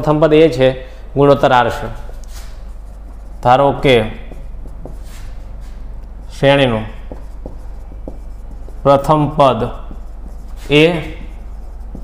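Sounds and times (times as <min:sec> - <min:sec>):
marker writing on whiteboard: 0:01.6 - 0:12.0.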